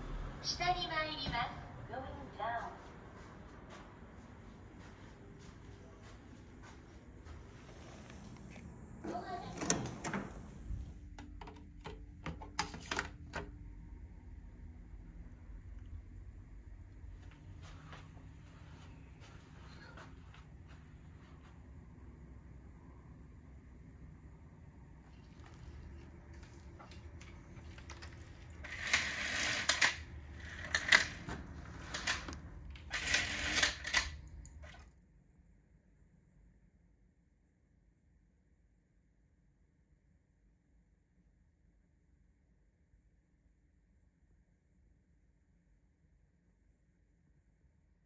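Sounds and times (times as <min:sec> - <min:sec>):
window shade rattling and scraping: 0:26.4 - 0:34.2
window shade clicks: 0:27.0 - 0:34.2.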